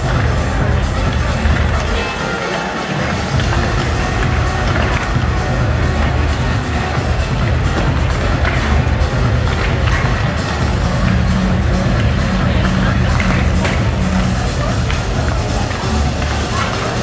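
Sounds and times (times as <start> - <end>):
loud music over sound system: 0.0 - 17.0.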